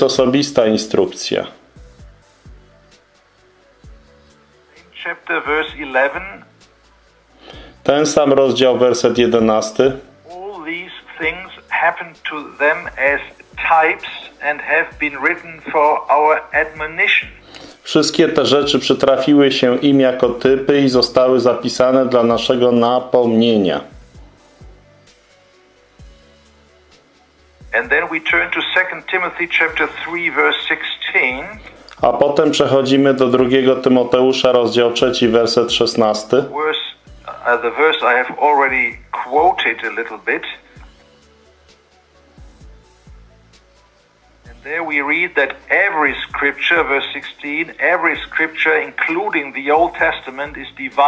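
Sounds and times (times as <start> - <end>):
man talking over a call: 0.0 - 1.6, 4.9 - 6.5, 7.9 - 23.9, 27.7 - 40.8, 44.5 - 51.0
man speaking over phone line: 5.0 - 6.4, 8.0 - 23.8, 27.7 - 40.7, 44.5 - 51.0.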